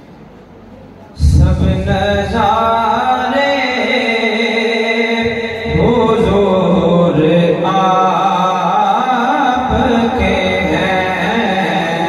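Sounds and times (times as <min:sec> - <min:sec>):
man singing devotional chant: 0:01.2 - 0:12.0.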